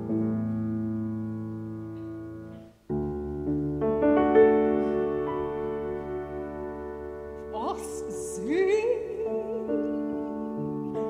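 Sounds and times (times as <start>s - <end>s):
solo piano chords: 0.0s - 11.0s.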